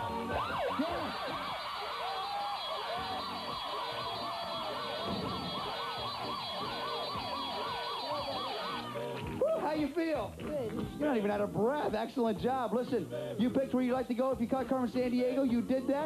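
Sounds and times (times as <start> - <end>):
siren-like whooping sound effect: 0.0 - 9.6.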